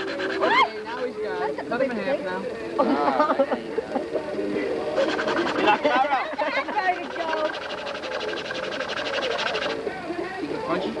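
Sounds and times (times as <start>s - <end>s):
fast even rattle: 5.0s - 9.9s.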